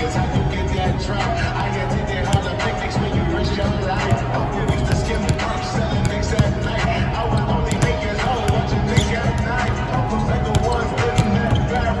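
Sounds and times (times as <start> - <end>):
basketballs bouncing on hardwood: 0.0 - 12.0
hip-hop music with rap vocals: 0.0 - 12.0.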